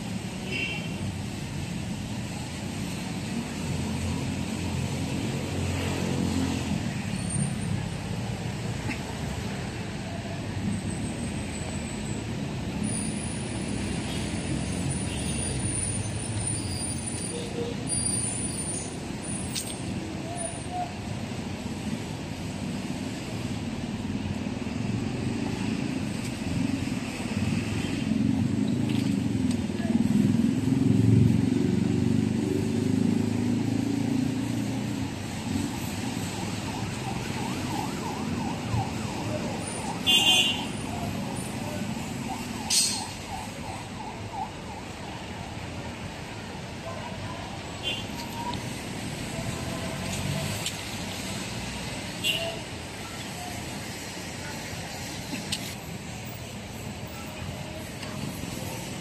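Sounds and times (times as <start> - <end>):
city street traffic: 0.0 - 59.0.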